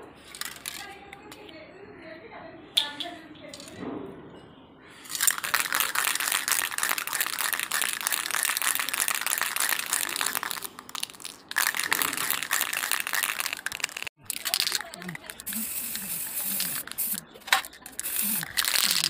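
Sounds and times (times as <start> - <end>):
spray can hissing: 5.1 - 19.0.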